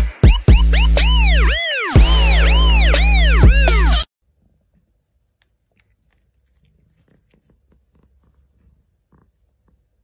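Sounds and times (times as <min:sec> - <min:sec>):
cat licking its paw: 0:04.4 - 0:10.0.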